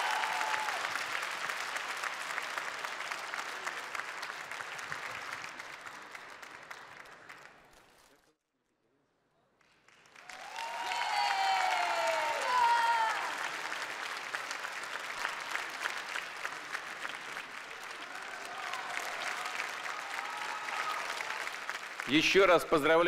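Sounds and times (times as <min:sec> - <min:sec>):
audience applauding: 0:00.0 - 0:08.2, 0:09.6 - 0:23.0
voices over clapping: 0:10.2 - 0:22.5.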